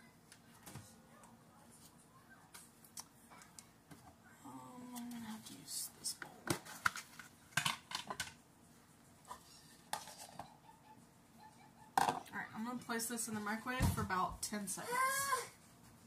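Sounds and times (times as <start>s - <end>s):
plastic bowls clattering: 6.5s - 8.4s, 9.3s - 10.5s, 12.0s - 12.3s.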